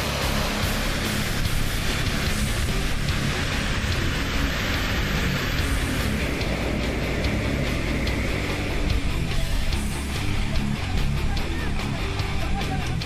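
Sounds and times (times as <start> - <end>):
water spray from hoses: 0.0 - 12.9
rock music: 0.0 - 13.0.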